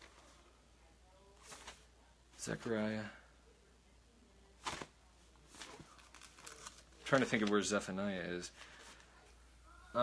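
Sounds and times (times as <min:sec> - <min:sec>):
book pages rustling: 0:01.4 - 0:01.9, 0:04.6 - 0:07.9.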